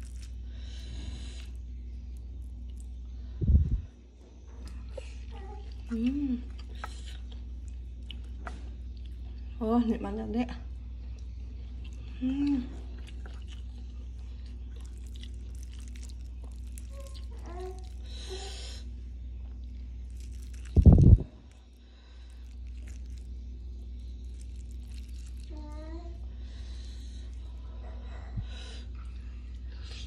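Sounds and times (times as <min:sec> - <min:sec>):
chewing and mouth sounds: 0:00.0 - 0:00.4, 0:04.6 - 0:09.5, 0:11.0 - 0:18.2, 0:19.4 - 0:25.6
steady low hum: 0:00.0 - 0:30.0.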